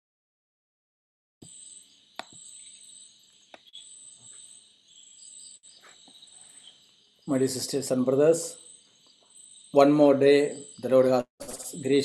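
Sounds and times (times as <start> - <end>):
crickets chirping: 1.4 - 12.0.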